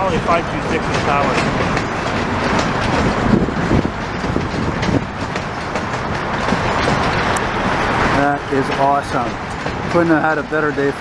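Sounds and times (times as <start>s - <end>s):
freight train rumbling past: 0.0s - 11.0s
wheels clattering on track: 0.0s - 11.0s.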